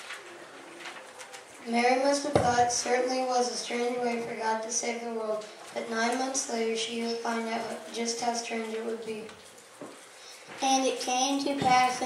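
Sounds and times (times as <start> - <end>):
young person reading aloud: 1.6 - 9.4, 10.2 - 12.0.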